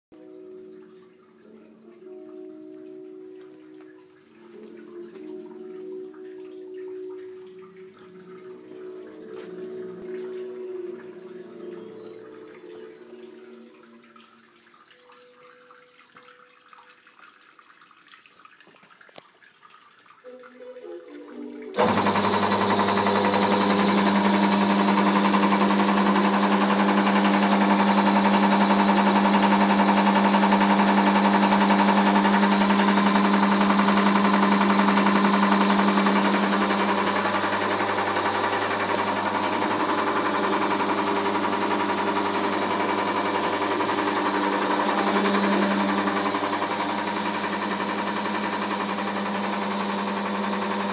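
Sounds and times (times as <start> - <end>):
electric motor humming: 21.8 - 50.9.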